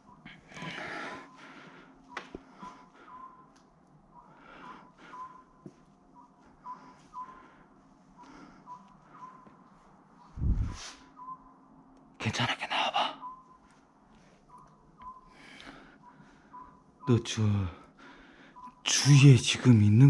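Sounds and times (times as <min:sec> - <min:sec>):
faint high chirps: 0:02.1 - 0:19.5.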